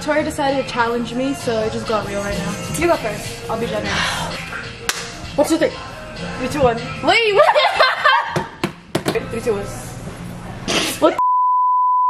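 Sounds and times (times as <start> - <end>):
laughter: 7.4 - 8.5
censor bleep: 11.2 - 12.0.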